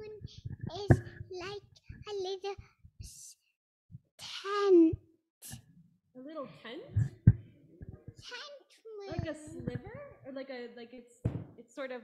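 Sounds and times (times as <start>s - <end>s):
child speaking into microphone: 0.0s - 3.3s, 4.2s - 5.0s, 7.9s - 10.2s.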